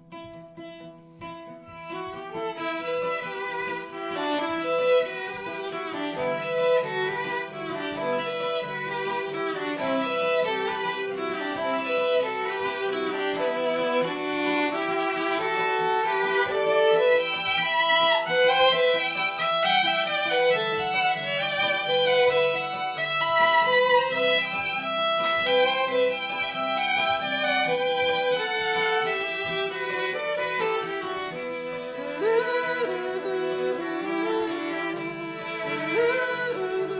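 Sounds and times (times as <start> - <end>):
bowed violin melody: 0.0 - 36.9.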